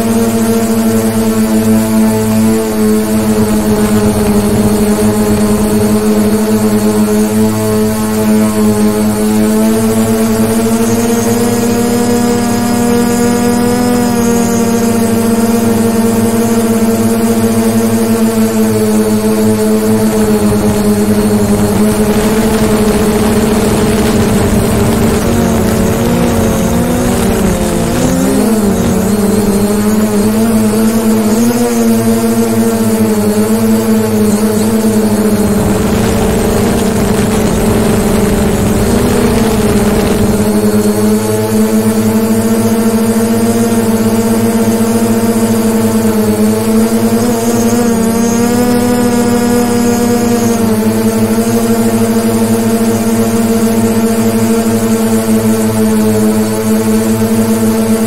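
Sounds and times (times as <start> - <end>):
drone propellers whining: 0.0 - 58.0.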